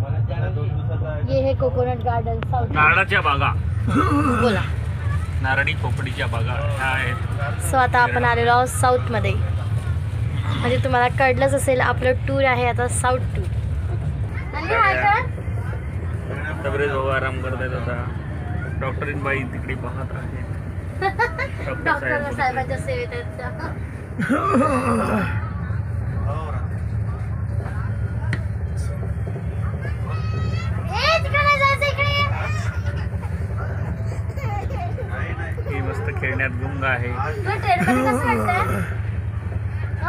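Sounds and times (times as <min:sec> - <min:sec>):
train running rumble: 0:00.0 - 0:40.0
people talking: 0:16.3 - 0:39.0.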